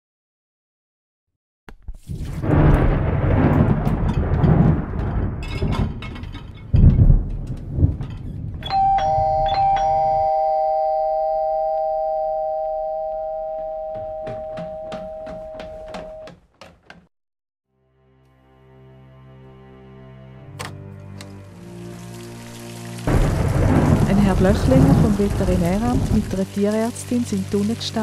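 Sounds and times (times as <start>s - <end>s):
two-note doorbell chime: 8.6s - 16.3s.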